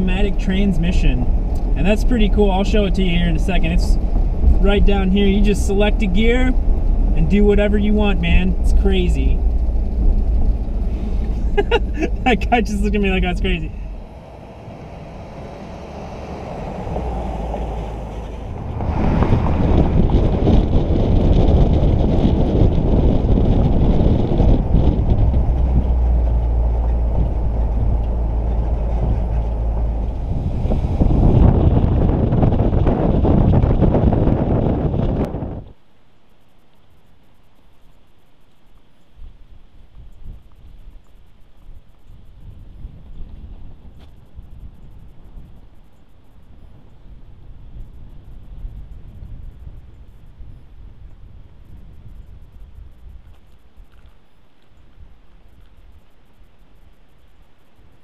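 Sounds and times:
low steady hiss: 0.0s - 18.7s, 35.3s - 58.0s
wind buffeting microphone: 0.0s - 35.8s, 39.2s - 54.2s
car engine and road noise: 0.0s - 58.0s.

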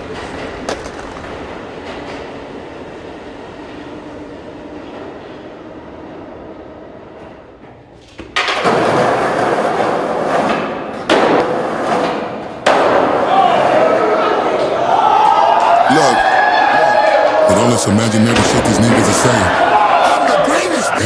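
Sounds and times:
subway train rumbling past: 0.0s - 7.9s.

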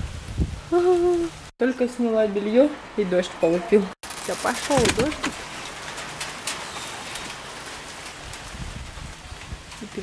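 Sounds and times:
light rain hissing: 4.1s - 10.0s.

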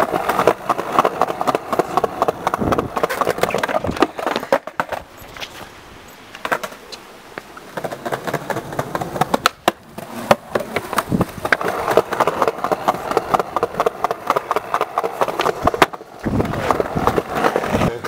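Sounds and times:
skateboard clicks and knocks: 0.0s - 18.0s
skateboard wheels rolling on stone: 0.0s - 18.0s.

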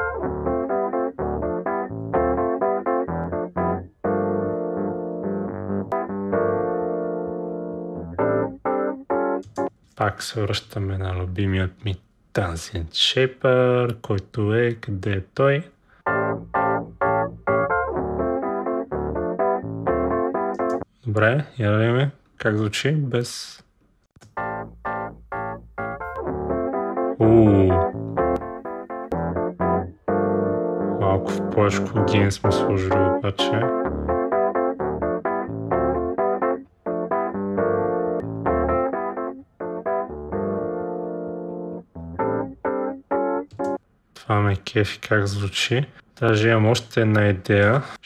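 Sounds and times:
electric piano chords: 0.0s - 9.7s, 16.1s - 20.8s, 24.2s - 43.8s.

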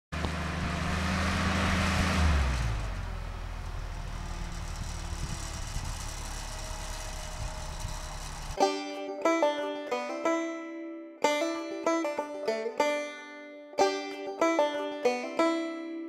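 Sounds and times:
engine revving then idling: 0.1s - 8.6s.

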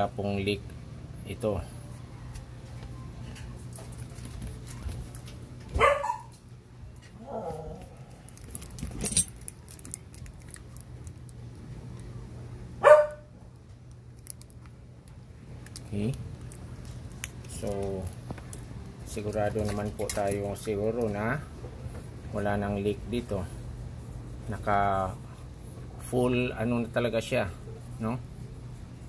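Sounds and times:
dog barking: 5.7s - 6.4s, 12.8s - 13.3s.

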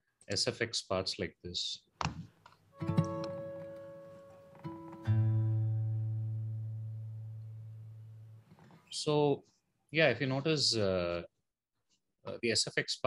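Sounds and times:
plucked guitar notes ringing: 2.8s - 8.5s.

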